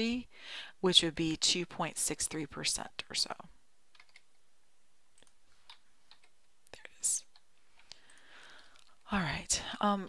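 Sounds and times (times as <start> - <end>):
computer mouse and keyboard clicks: 3.9 - 4.4, 5.1 - 6.5.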